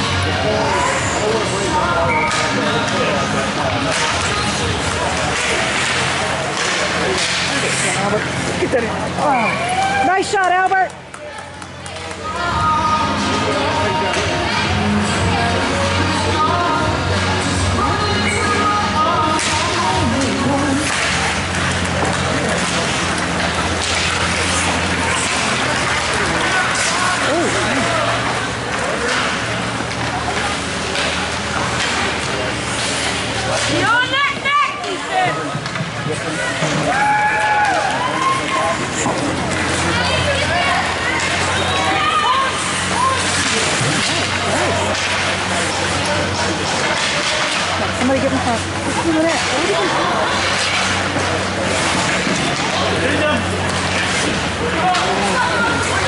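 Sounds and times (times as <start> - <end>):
spectators talking and calling out: 0.0 - 56.0
crowd shouts: 9.2 - 10.5, 36.5 - 45.1
skates scraping on ice: 19.2 - 56.0.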